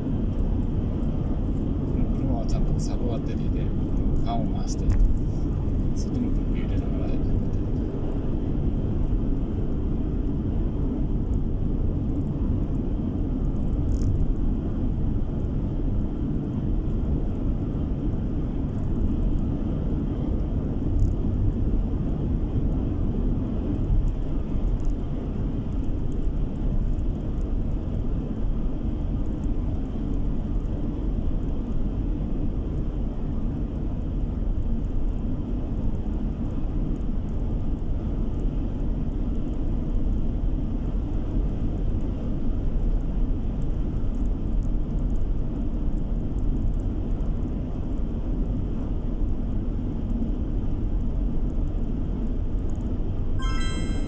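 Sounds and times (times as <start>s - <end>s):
car cabin road noise: 0.0s - 14.7s.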